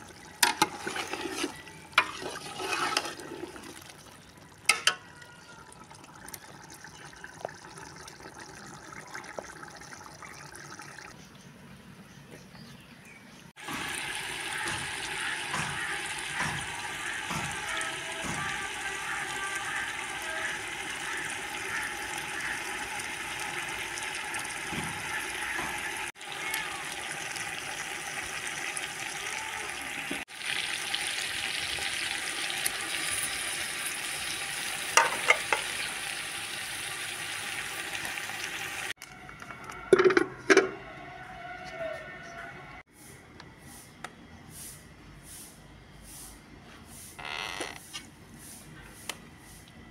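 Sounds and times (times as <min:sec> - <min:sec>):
meat sizzling in a pot: 0:00.0 - 0:03.8, 0:13.6 - 0:39.0.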